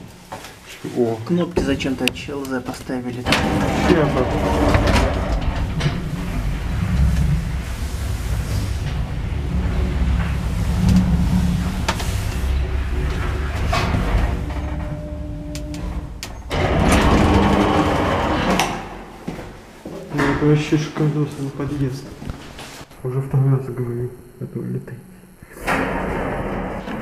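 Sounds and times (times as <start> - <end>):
lift low rumble: 3.2 - 19.8
sliding doors opening: 3.2 - 20.6.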